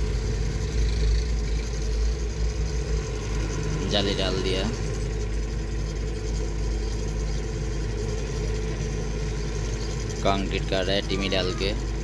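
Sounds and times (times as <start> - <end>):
heavy diesel engine rumbling: 0.0 - 12.0.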